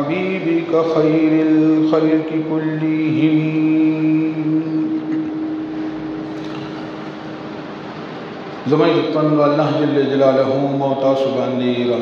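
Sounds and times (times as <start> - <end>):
man chanting: 0.0 - 5.8, 8.6 - 12.0
room noise: 0.0 - 12.0.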